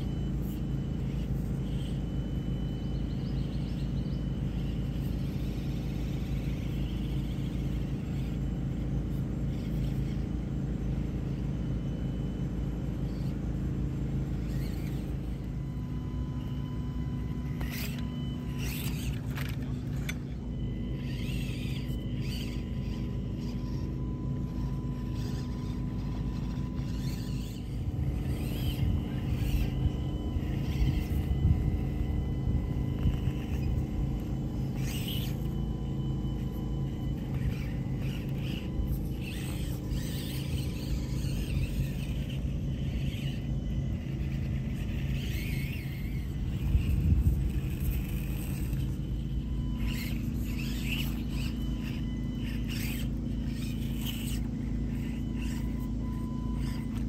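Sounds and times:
toy truck electric motor humming: 0.0 - 57.0.

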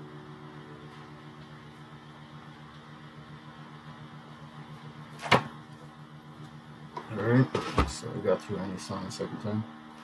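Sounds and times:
low electrical buzz: 0.0 - 10.0.

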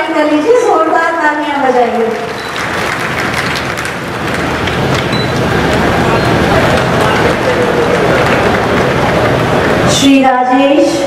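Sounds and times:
audience applauding: 2.1 - 9.9
faint voices: 4.8 - 10.0.

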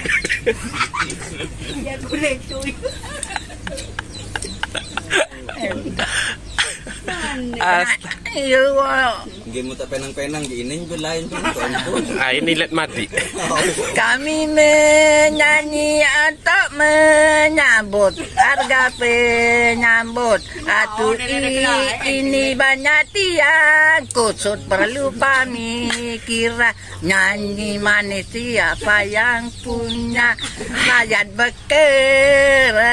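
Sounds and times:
woman and man laughing: 0.0 - 8.4, 11.3 - 14.2, 18.0 - 19.6, 30.4 - 31.2
person singing unaccompanied: 0.0 - 9.4, 10.4 - 32.9.

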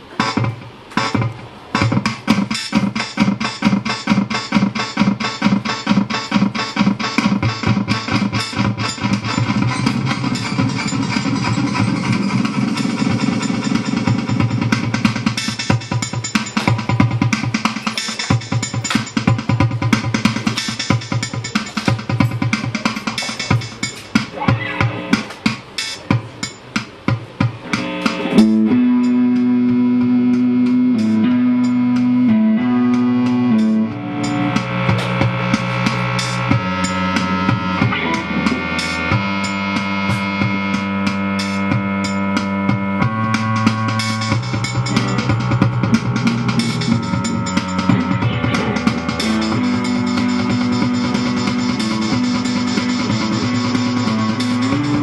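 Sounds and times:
electric guitars: 0.0 - 25.6, 27.5 - 55.0
steady busy beat: 0.0 - 55.0
synthesizer: 0.0 - 55.0.

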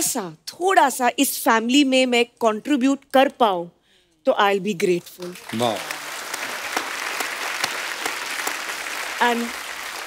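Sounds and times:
audience applauding: 5.2 - 10.0.

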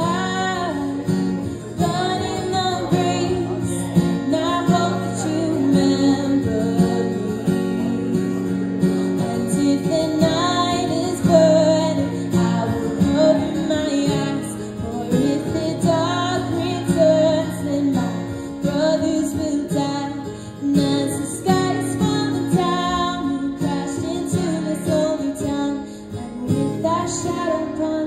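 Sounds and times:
strummed acoustic guitar: 0.0 - 28.0
woman singing: 0.0 - 28.0.

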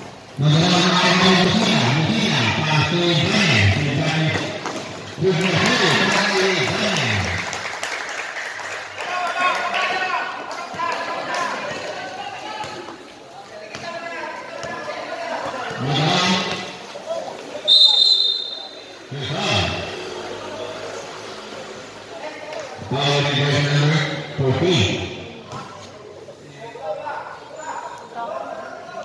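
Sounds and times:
referee's whistle blast: 17.7 - 18.8.

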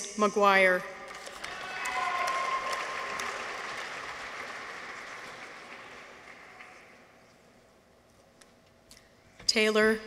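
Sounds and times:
audience clapping: 1.2 - 7.2.

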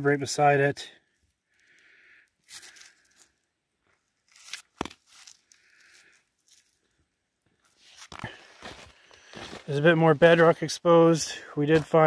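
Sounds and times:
gloved hand handling rock: 1.1 - 10.7, 11.6 - 12.0.

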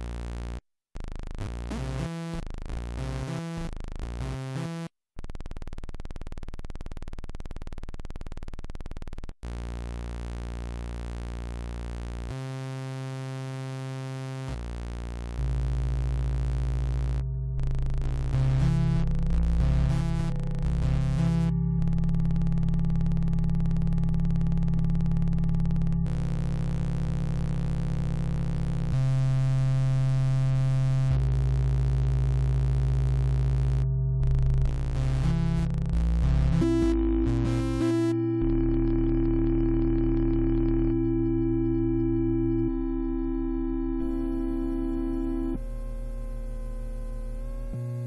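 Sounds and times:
synthesizer oscillator droning: 15.0 - 48.0.

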